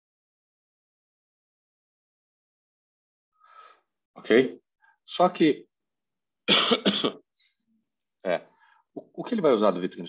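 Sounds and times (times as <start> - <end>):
man coughing: 6.5 - 7.2.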